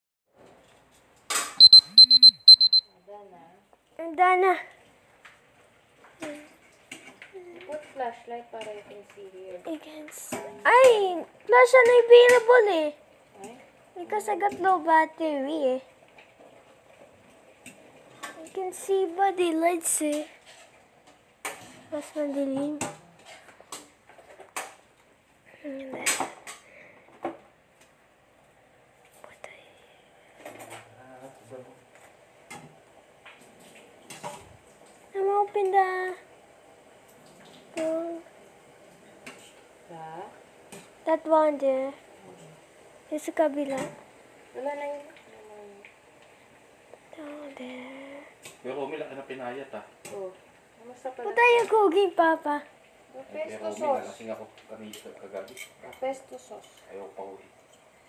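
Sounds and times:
phone timer alarm beeps: 0:01.6 - 0:02.9.

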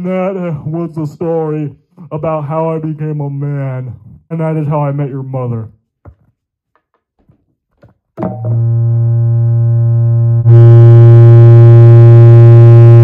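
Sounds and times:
low steady electronic note: 0:08.2 - 0:13.0.

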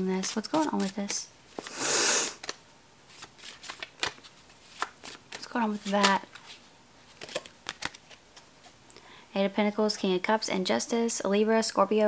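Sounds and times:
cards shuffled by hand: 0:00.2 - 0:08.4.

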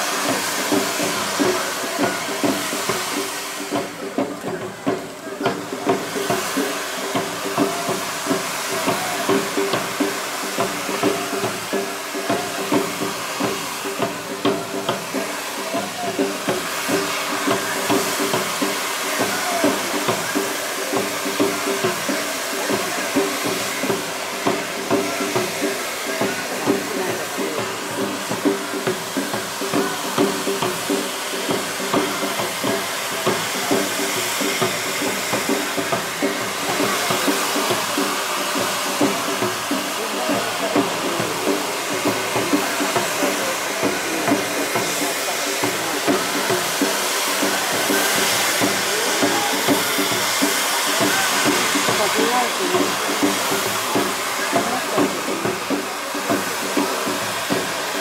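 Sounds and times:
fireworks hissing and crackling: 0:00.0 - 0:58.0
murmur of voices: 0:00.0 - 0:58.0.

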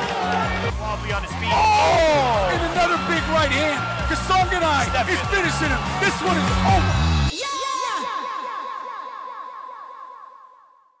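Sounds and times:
soundtrack bass: 0:00.4 - 0:07.3.

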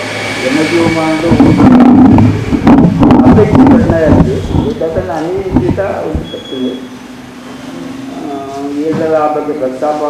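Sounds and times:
man talking into microphone: 0:00.4 - 0:02.1, 0:03.1 - 0:06.9, 0:08.2 - 0:10.0
thumps on microphone: 0:01.3 - 0:04.8, 0:05.4 - 0:06.3.

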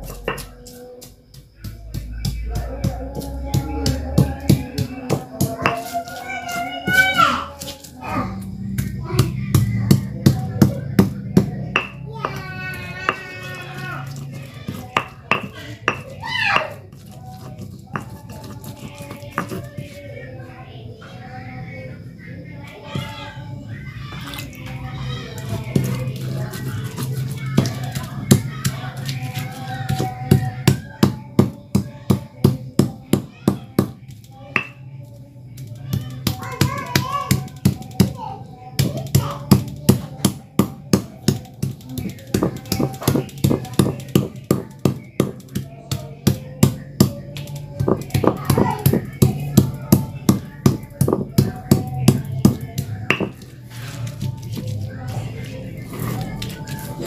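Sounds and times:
stone pestle pounding in mortar: 0:00.0 - 0:00.7, 0:01.3 - 0:06.0, 0:08.7 - 0:19.9, 0:25.7 - 0:34.0, 0:38.8 - 0:53.5
background music: 0:00.0 - 0:21.1, 0:21.9 - 0:57.0
background voices: 0:00.0 - 0:57.0.

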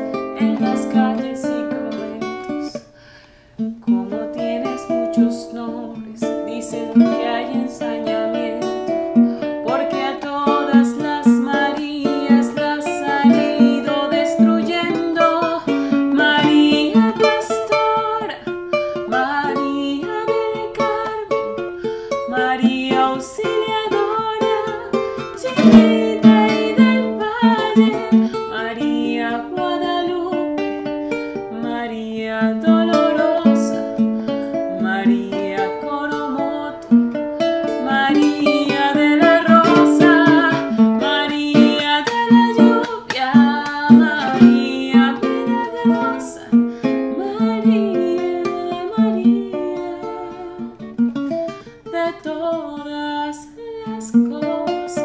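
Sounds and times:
woman singing a hymn: 0:00.0 - 0:02.8, 0:03.8 - 0:21.6, 0:22.2 - 0:30.7, 0:31.5 - 0:34.0, 0:34.6 - 0:37.0, 0:37.8 - 0:50.9, 0:51.9 - 0:55.0
strummed acoustic string instrument: 0:00.0 - 0:55.0.

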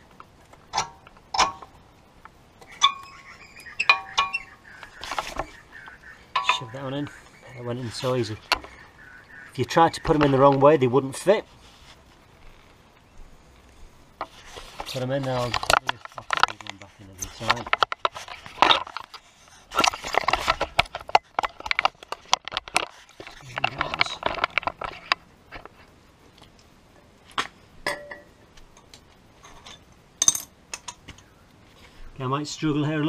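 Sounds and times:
metal clicks and clinks: 0:06.3 - 0:06.6, 0:29.6 - 0:31.1.

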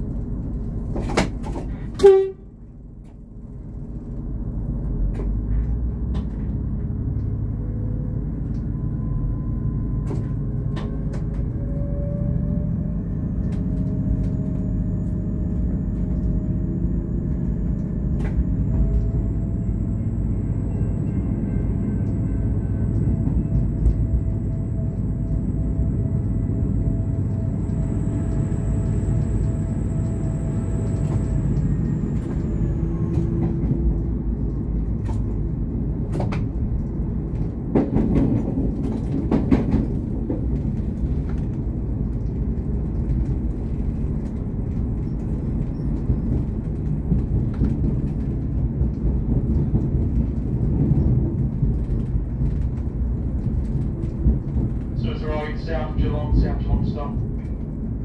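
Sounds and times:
train engine and wheels rumbling: 0:00.0 - 0:58.0.

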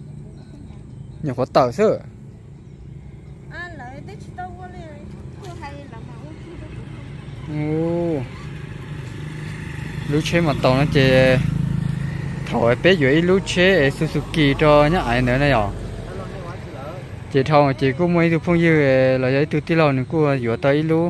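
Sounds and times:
car approaching: 0:00.0 - 0:21.0
people talking: 0:10.1 - 0:11.5, 0:12.5 - 0:21.0.

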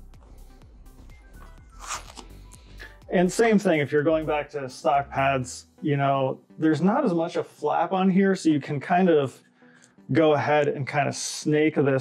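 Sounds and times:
soft music with steady beat: 0:00.0 - 0:12.0
earpad pulled rasp: 0:01.6 - 0:02.6.

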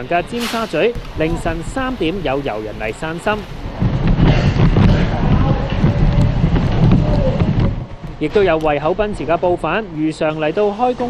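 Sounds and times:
driving rain: 0:00.0 - 0:11.0
strong wind gusting: 0:00.0 - 0:11.0.

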